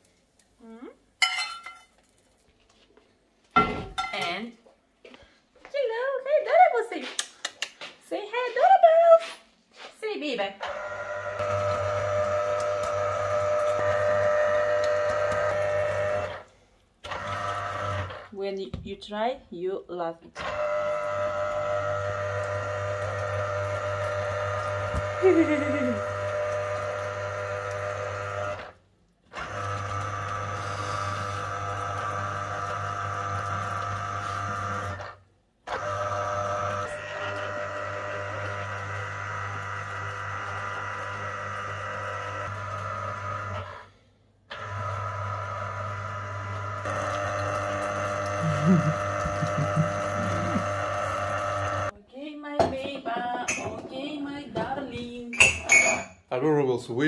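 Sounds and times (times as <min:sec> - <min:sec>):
electric juicer motor humming: 0:10.6 - 0:18.3, 0:20.3 - 0:51.9.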